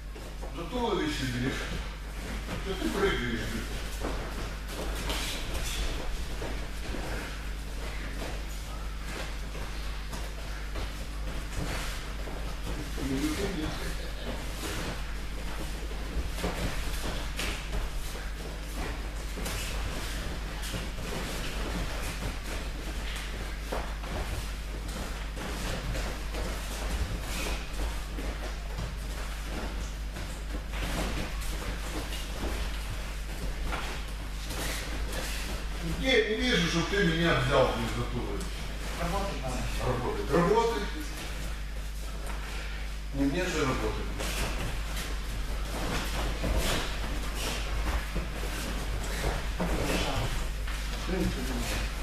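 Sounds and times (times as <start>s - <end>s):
steady low hum: 0.0s - 52.0s
bare feet thudding on mats: 1.5s - 36.1s, 44.0s - 52.0s.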